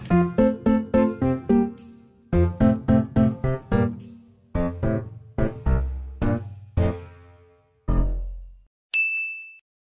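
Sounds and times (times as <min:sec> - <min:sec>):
bright bell-like ding: 0:07.9 - 0:09.6.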